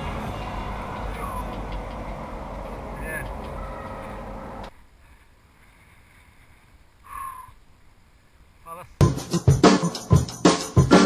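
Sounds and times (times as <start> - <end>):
bike tyre and frame noise: 0.0 - 8.6.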